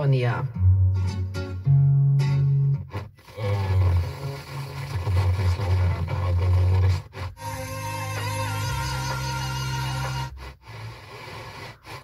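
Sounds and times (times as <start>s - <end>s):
car radio broadcast with strong bass: 2.8s - 12.0s.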